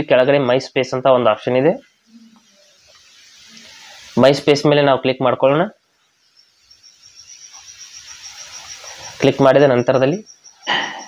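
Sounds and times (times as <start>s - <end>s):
faint hiss: 0.0s - 11.0s
insect chirping: 0.0s - 11.0s.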